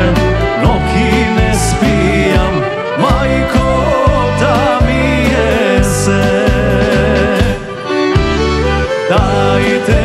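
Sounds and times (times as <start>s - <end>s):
accordion: 0.0s - 10.0s
pulsing bass line: 0.0s - 10.0s
violin: 0.0s - 10.0s.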